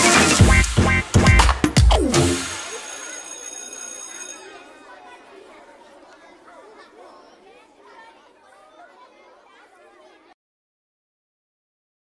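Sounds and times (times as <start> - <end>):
faint chatter of voices: 2.5 - 10.4.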